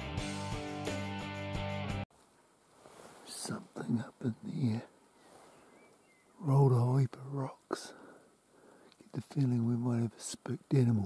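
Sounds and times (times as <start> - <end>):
brief hiss: 2.7 - 3.5
man speaking: 3.2 - 5.0, 6.4 - 8.0, 9.0 - 11.0.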